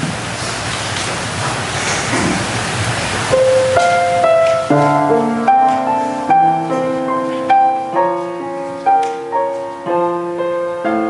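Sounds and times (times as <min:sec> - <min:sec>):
steady rushing hiss: 0:00.0 - 0:11.0
piano sustained notes: 0:03.2 - 0:11.0.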